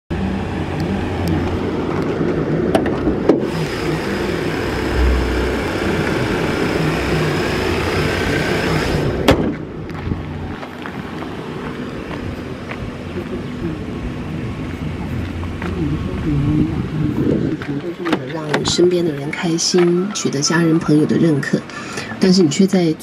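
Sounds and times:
car engine idling: 0.1s - 19.6s.

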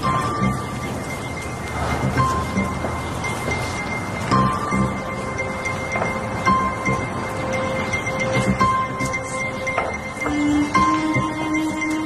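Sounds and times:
sustained tones: 0.0s - 12.0s.

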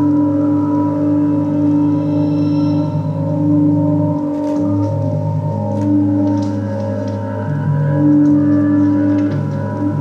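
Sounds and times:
low electronic drone: 0.0s - 10.0s.

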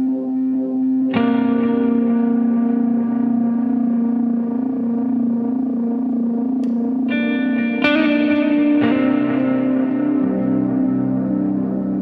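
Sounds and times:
electric guitar with effects: 0.0s - 12.0s.

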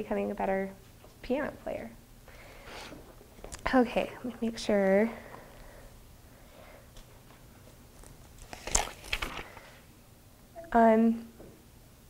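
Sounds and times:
notebook pages rustling: 8.0s - 9.8s.

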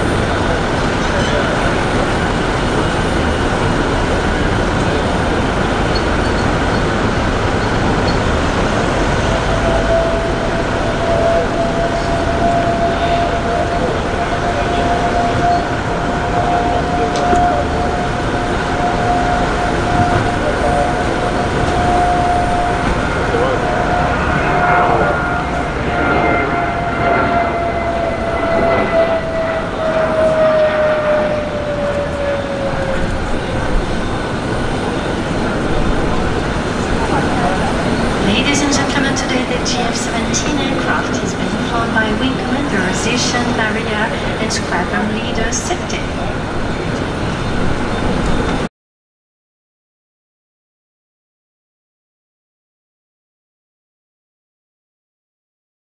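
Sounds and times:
jet roar with whine: 0.0s - 48.7s.

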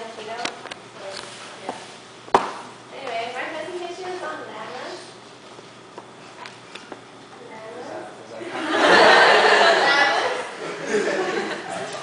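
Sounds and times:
woman speaking: 2.9s - 5.2s.

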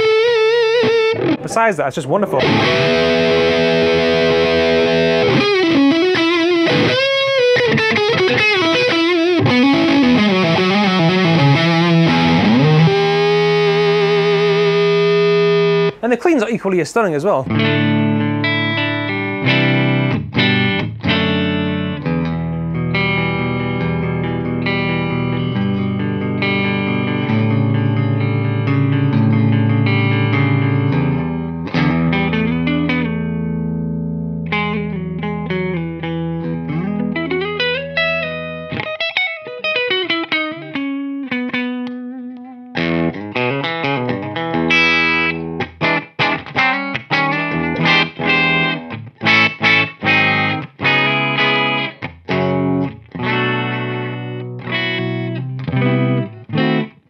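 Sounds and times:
clean electric guitar: 0.0s - 16.1s, 17.4s - 57.0s.

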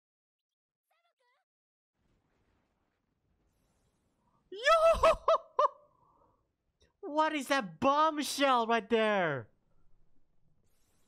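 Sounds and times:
man shouting excitedly: 7.0s - 9.4s.

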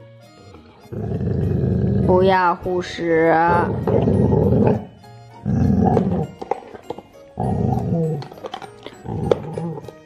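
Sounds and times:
dog growling low: 0.8s - 2.2s, 3.4s - 6.4s, 7.4s - 10.0s.

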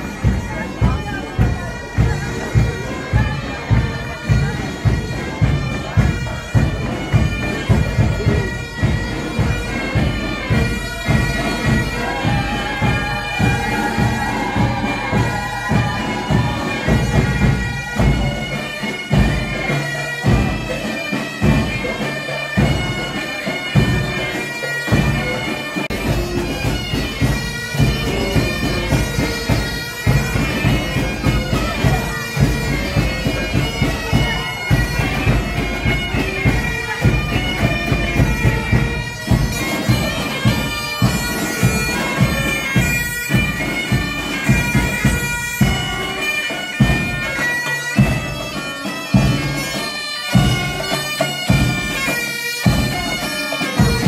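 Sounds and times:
bagpipes playing with drones: 0.0s - 54.0s
low drum beat: 0.2s - 18.5s.

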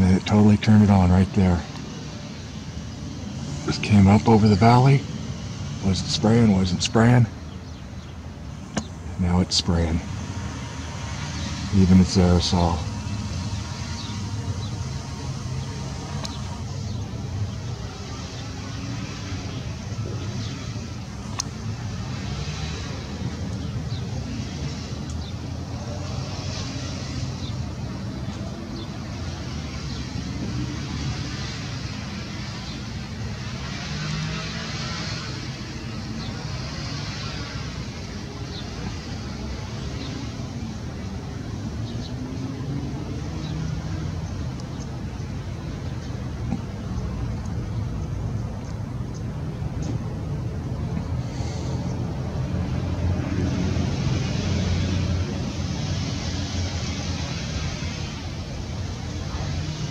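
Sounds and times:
low rumble of vehicle engines: 0.0s - 59.9s.

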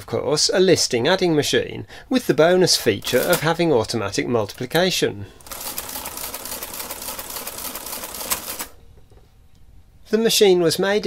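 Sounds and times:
adding machine mechanism clattering: 3.0s - 3.6s.

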